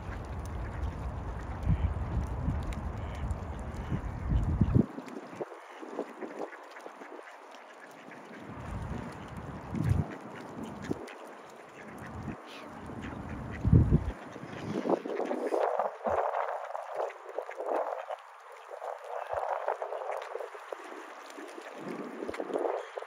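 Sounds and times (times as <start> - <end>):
ducks quacking: 0.1 - 2.0, 2.9 - 23.0.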